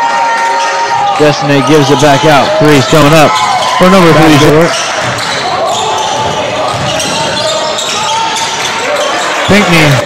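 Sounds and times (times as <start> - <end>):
crowd and player voices: 0.0 - 10.0.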